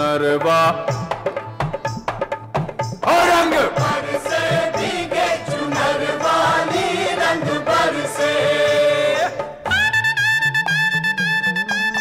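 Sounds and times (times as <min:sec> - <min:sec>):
instrumental backing: 0:00.0 - 0:12.0
group singing: 0:03.0 - 0:09.7.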